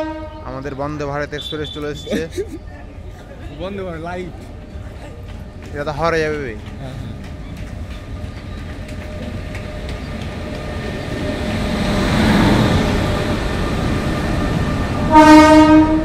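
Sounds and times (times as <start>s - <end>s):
train passing rumble: 0.0s - 16.0s.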